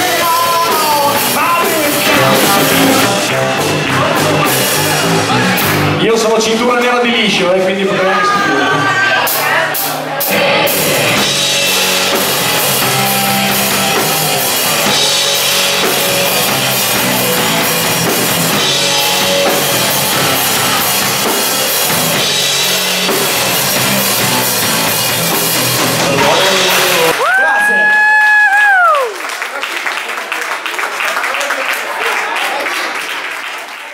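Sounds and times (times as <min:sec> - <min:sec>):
electric guitar: 0:00.0 - 0:06.1, 0:08.2 - 0:28.5
electric bass: 0:00.0 - 0:06.7, 0:07.3 - 0:27.4
drum kit: 0:00.0 - 0:08.5, 0:09.1 - 0:29.0.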